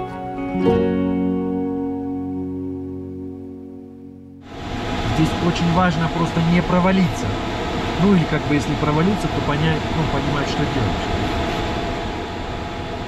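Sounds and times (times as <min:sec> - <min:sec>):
plucked string music: 0:00.0 - 0:04.5
airflow noise in cockpit: 0:04.4 - 0:13.0
man talking: 0:05.1 - 0:07.4, 0:08.0 - 0:11.1.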